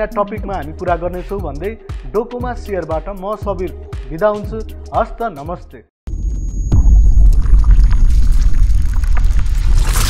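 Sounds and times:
deep rumble: 6.1s - 10.0s
whoosh: 6.7s - 10.0s
water splashing: 7.2s - 10.0s.

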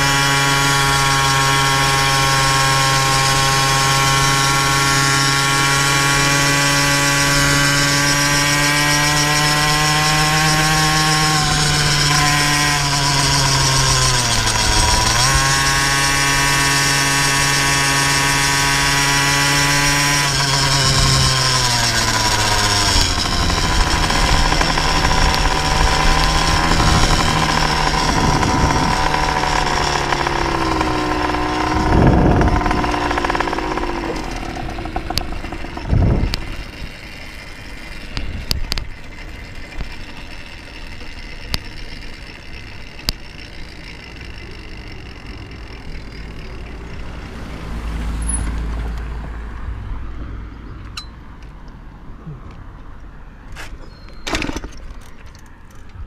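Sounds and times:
two-stroke engine revving high: 0.0s - 50.1s.

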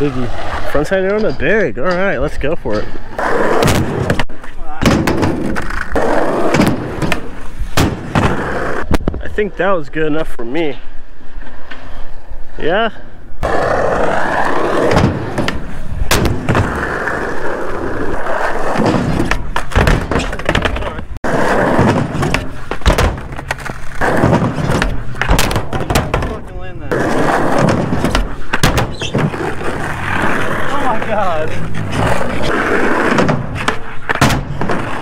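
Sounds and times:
skateboard wheels rolling on concrete: 0.0s - 35.0s
skateboard clacks: 18.5s - 31.2s.

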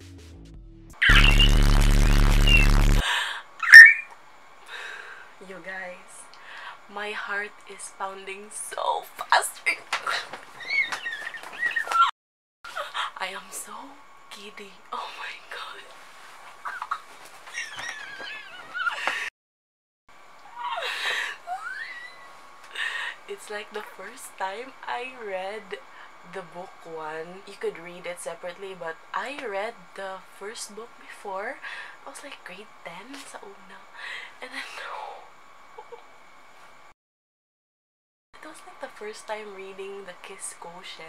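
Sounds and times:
high-pitched squeal: 1.0s - 3.0s
whistling kettle: 3.6s - 4.0s
woman squealing muffled: 20.5s - 22.3s.

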